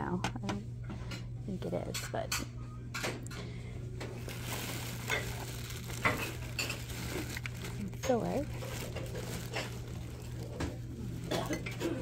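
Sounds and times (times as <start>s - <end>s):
steady low hum: 0.0s - 12.0s
rustling of household items: 0.8s - 12.0s
plastic bag being handled: 4.0s - 12.0s.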